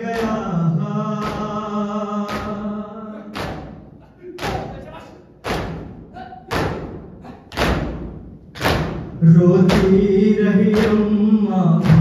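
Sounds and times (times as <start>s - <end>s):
people beating chests in unison: 0.0s - 12.0s.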